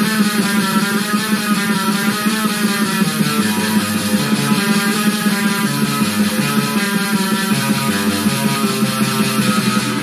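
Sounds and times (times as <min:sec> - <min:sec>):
distorted electric guitar metal riff: 0:00.0 - 0:10.0
fast metal drum loop: 0:00.0 - 0:10.0.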